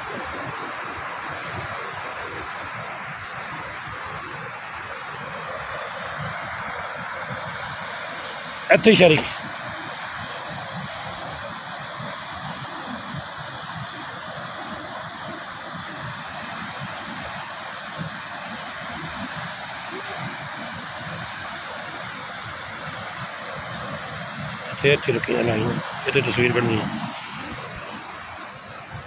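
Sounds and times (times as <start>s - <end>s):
water rushing over rocks: 0.0s - 29.0s.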